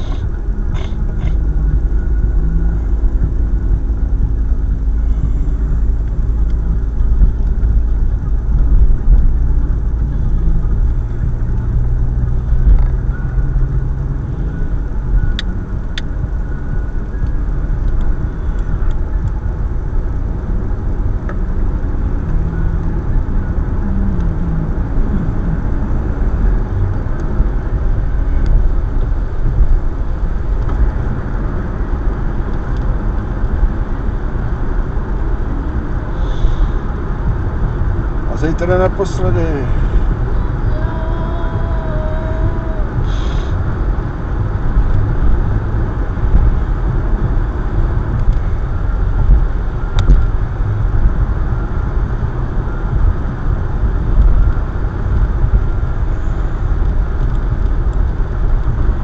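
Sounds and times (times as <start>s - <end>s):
car road and engine rumble: 0.0s - 59.0s.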